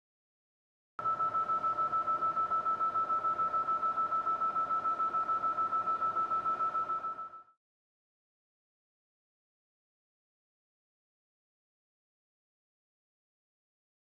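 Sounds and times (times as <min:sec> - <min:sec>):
high electronic beeps: 0:01.0 - 0:07.6.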